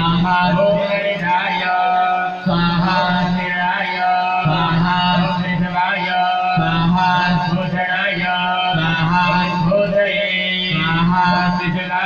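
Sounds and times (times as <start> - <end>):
person chanting mantras: 0.0 - 12.0.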